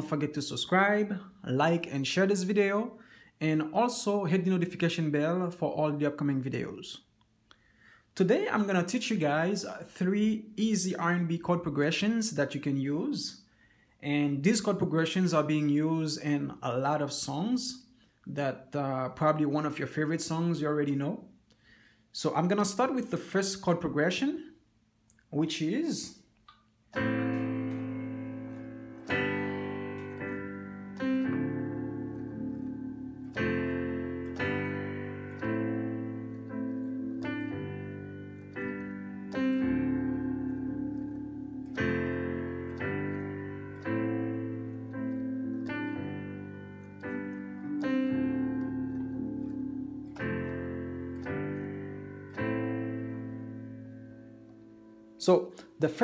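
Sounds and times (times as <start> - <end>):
digital piano chords: 0.0 - 7.0, 8.2 - 21.2, 25.2 - 56.0.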